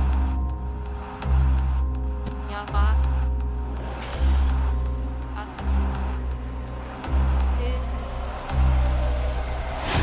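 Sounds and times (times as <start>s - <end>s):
deep bass drone: 0.0s - 10.0s.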